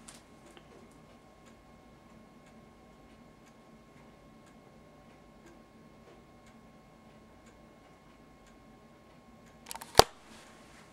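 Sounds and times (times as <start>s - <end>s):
wall clock ticking: 0.0s - 9.6s
faint steady hum: 0.0s - 10.9s
quick clicks: 9.7s - 10.2s.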